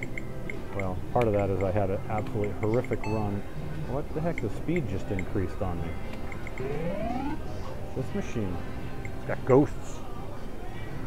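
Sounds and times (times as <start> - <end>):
short high electronic beeps: 6.6 - 7.4
rising electronic tone: 6.6 - 7.6.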